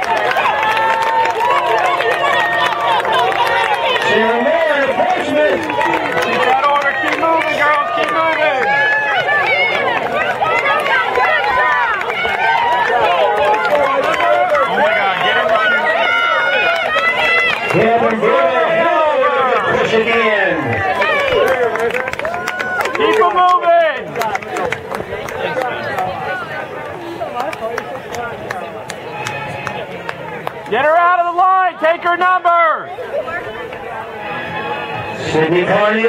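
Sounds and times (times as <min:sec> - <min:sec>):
crowd shouting and cheering: 0:00.0 - 0:36.0.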